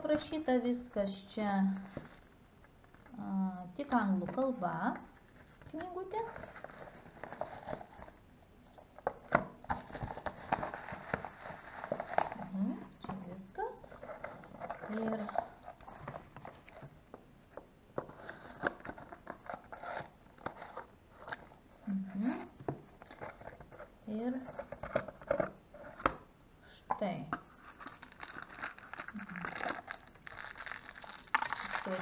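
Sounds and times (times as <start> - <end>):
packaging crinkling: 5.4 - 8.2, 9.7 - 12.5, 27.5 - 32.0.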